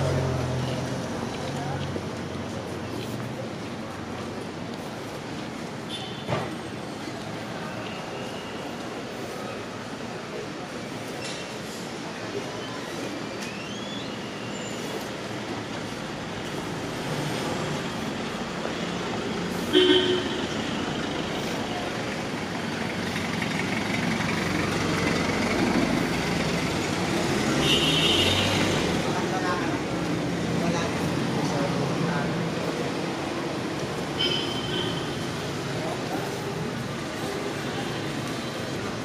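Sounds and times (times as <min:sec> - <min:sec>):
people talking: 0:00.0 - 0:05.1, 0:27.2 - 0:34.0, 0:34.6 - 0:39.0
cars passing: 0:00.0 - 0:07.8, 0:14.2 - 0:39.0
car horn toot: 0:19.7 - 0:20.4.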